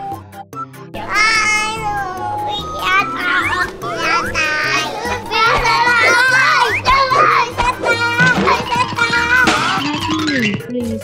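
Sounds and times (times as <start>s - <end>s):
children shouting and laughing: 1.0s - 10.2s.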